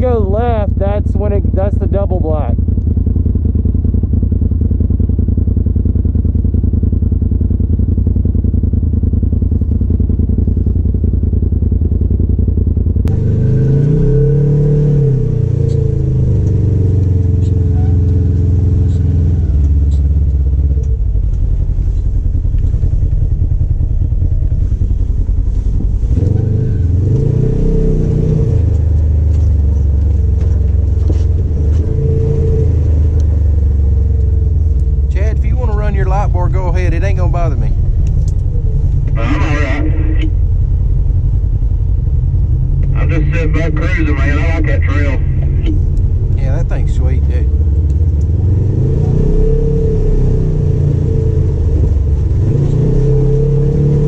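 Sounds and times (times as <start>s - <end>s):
engine low drone: 0.0s - 54.0s
engine revving: 12.2s - 54.0s.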